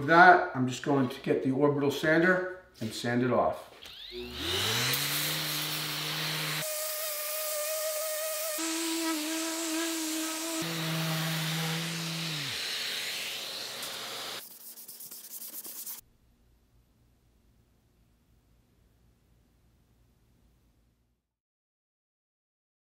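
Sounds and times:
orbital sander with vacuum: 3.8 - 15.0.

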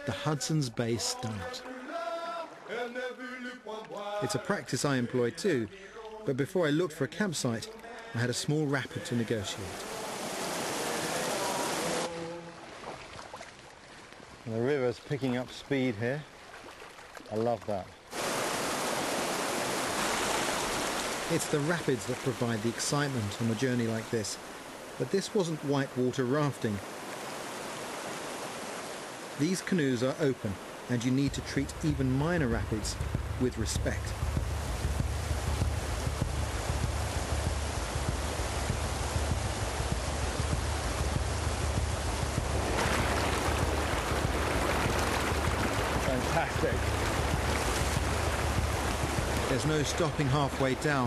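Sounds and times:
river rapids rushing over rocks: 9.0 - 12.6, 18.1 - 25.8, 26.8 - 31.0, 33.7 - 51.0
wind rumble on microphone: 34.0 - 49.6.

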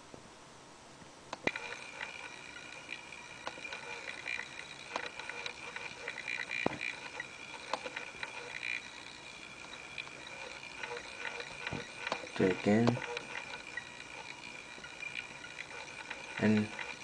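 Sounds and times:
faint high-pitched whine and hiss: 0.0 - 17.0
computer mouse clicks: 1.3 - 17.0.

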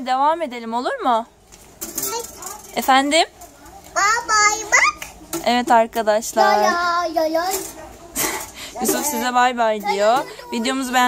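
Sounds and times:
small child speaking: 2.0 - 2.7, 4.0 - 5.2, 6.4 - 7.7.

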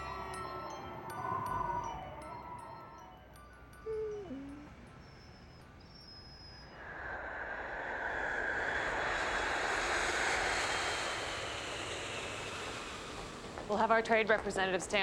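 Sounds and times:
dog whining: 3.8 - 6.5
jet airliner approaching: 6.8 - 13.8.

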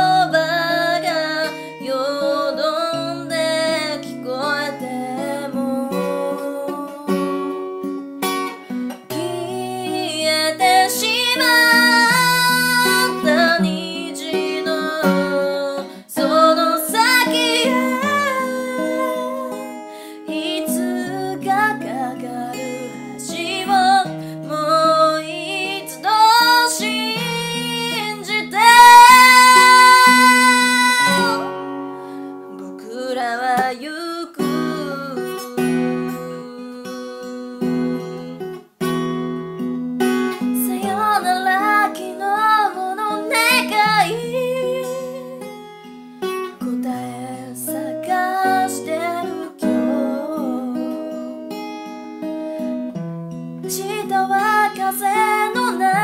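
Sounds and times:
woman singing a ballad: 0.0 - 7.9, 9.0 - 38.6, 40.4 - 45.6, 46.5 - 51.6, 53.6 - 56.0
acoustic guitar: 0.0 - 56.0.

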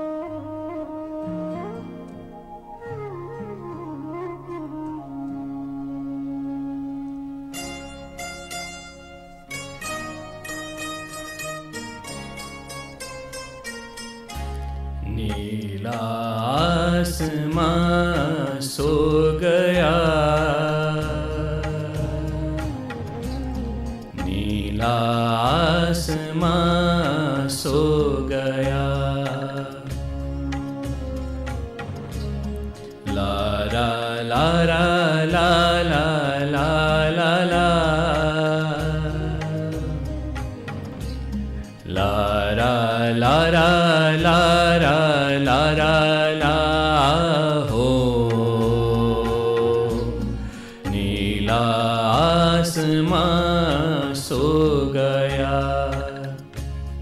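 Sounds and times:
backing track with low beat: 9.5 - 57.0
man singing: 15.0 - 31.6, 33.0 - 41.1, 41.8 - 56.6.

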